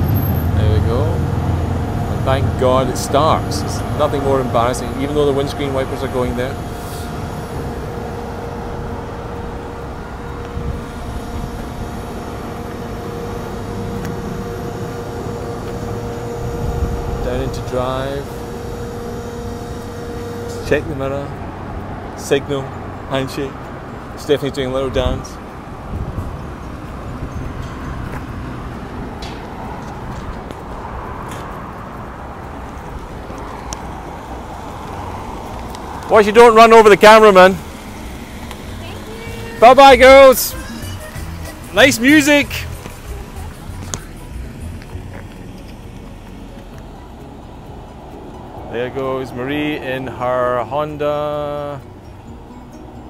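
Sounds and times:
car engine idling: 0:00.0 - 0:53.0.

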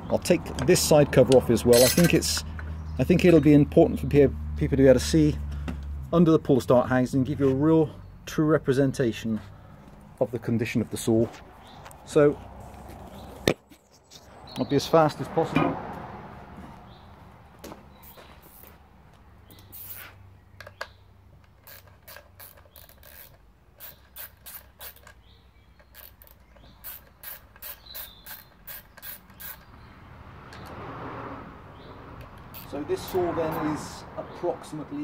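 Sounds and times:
screws being undone clicking: 0:01.3 - 0:02.7, 0:19.6 - 0:25.2, 0:25.8 - 0:29.7, 0:32.3 - 0:32.8.

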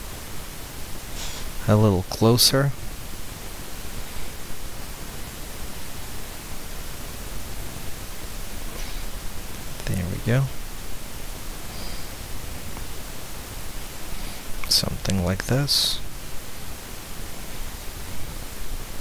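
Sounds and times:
recording hiss: 0:00.0 - 0:19.0.

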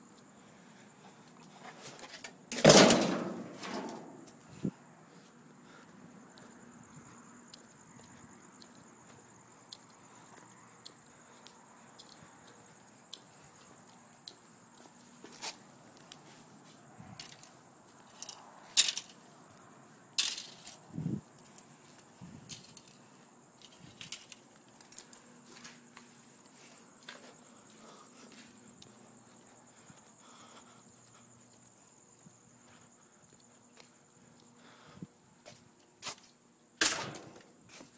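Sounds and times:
knocks and metallic clatters: 0:02.5 - 0:04.3.

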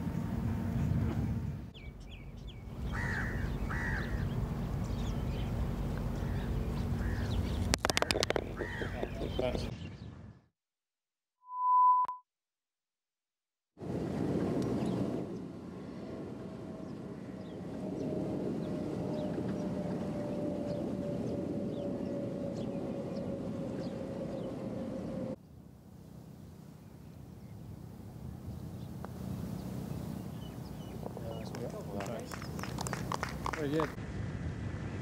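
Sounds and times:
open-air ambience: 0:00.0 - 0:10.5, 0:13.8 - 0:35.0
short electronic beep: 0:11.4 - 0:12.3.

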